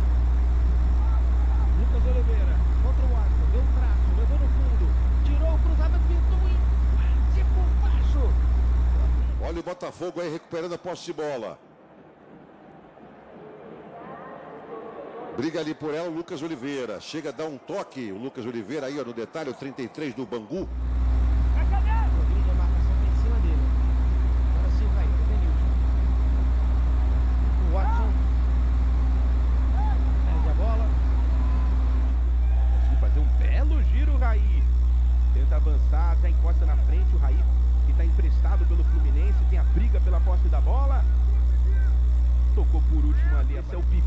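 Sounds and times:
low rumble of field sound: 20.7s - 44.0s
players shouting: 25.5s - 33.6s.

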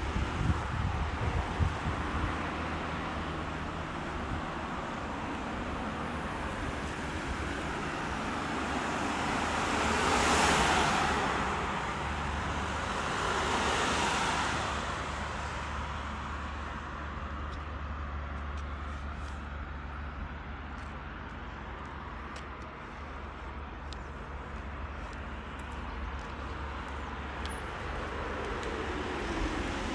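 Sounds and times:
traffic rumble: 0.0s - 29.9s
vehicles passing: 0.0s - 29.9s.

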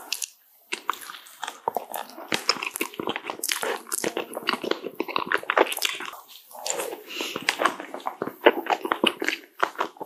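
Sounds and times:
sticky crackles and squishes: 0.0s - 10.0s.

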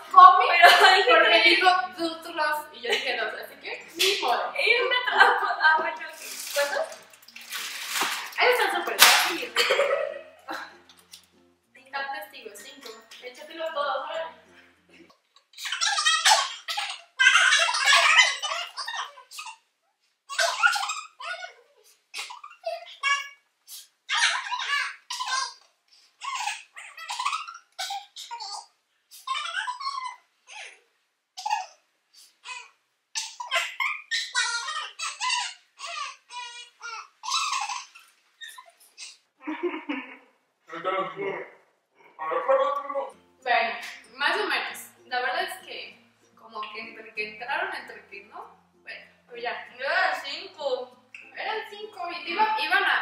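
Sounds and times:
girls laughing and exclaiming: 0.2s - 3.4s, 4.0s - 6.1s
girls laughing and squealing: 15.6s - 19.4s.

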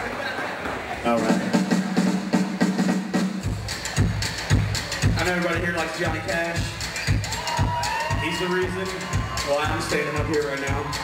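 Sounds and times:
kick drum beats: 1.4s - 11.0s.

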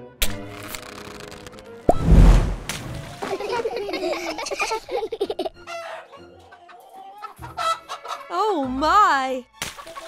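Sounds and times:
chickens clucking: 5.6s - 8.3s.

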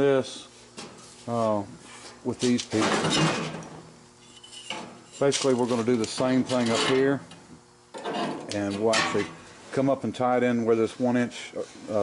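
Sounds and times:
metal scraping and rattling: 4.4s - 7.2s, 8.0s - 9.3s.

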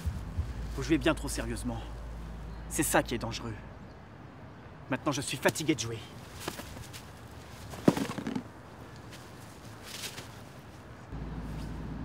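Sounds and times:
clothing scuffling and rustling: 6.2s - 11.8s.

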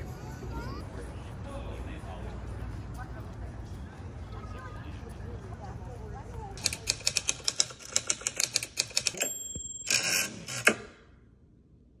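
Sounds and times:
typewriter key strikes: 6.6s - 9.3s
typewriter carriage bell: 6.6s - 10.7s
typewriter carriage return clunk: 6.6s - 10.8s.

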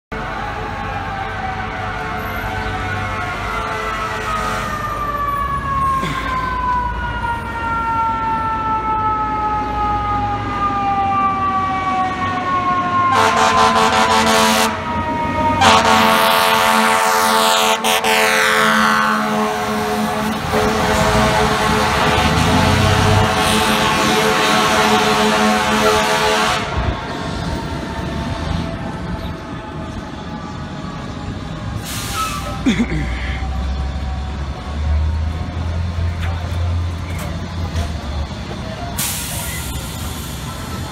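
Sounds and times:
traffic noise: 0.1s - 40.9s
truck engine: 0.1s - 40.9s
siren winding down: 0.3s - 16.2s
truck air horn blasting: 3.2s - 4.8s, 13.1s - 14.9s, 15.6s - 27.0s.

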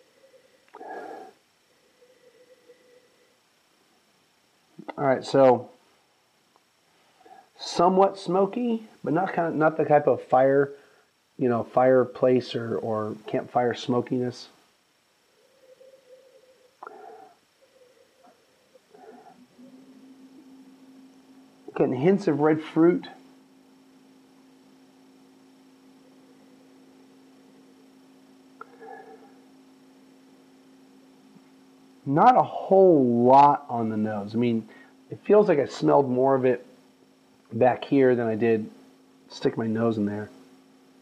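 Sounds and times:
faint breathing: 0.0s - 3.5s, 6.8s - 7.6s, 10.7s - 11.2s, 15.4s - 20.0s, 28.6s - 29.6s, 34.6s - 35.1s
person sniffing: 0.7s - 1.4s, 16.8s - 17.4s
sniffing and breathing: 15.8s - 17.4s.

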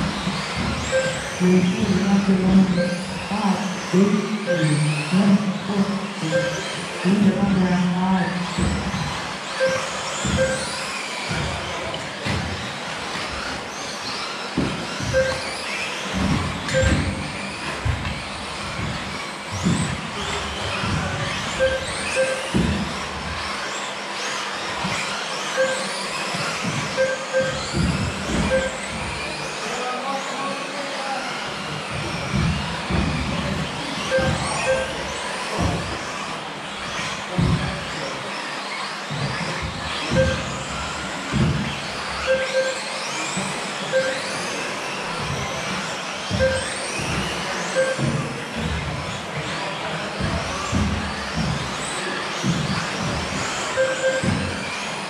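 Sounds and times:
toy car motors whining: 0.0s - 55.0s
short beeps: 0.9s - 2.0s, 2.6s - 3.3s, 4.4s - 5.3s, 6.2s - 6.9s, 9.6s - 10.8s, 15.1s - 15.5s, 16.7s - 17.2s, 21.6s - 22.6s, 25.6s - 26.0s, 27.0s - 27.7s, 28.5s - 28.9s, 34.1s - 35.1s, 40.1s - 40.5s, 42.3s - 42.9s, 43.9s - 44.3s, 46.4s - 46.8s, 47.8s - 48.1s, 53.8s - 54.4s.

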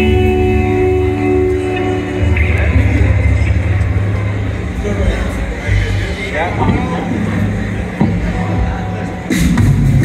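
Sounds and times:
gliding guitar or synth tones: 0.0s - 9.0s
low bass and synthesizer drone: 0.0s - 10.0s.

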